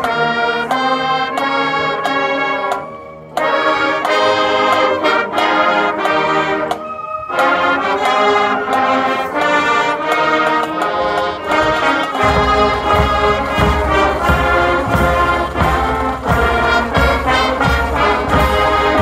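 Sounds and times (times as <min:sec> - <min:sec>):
brass holding chords: 0:00.0 - 0:19.0
bass drum strokes: 0:11.4 - 0:19.0.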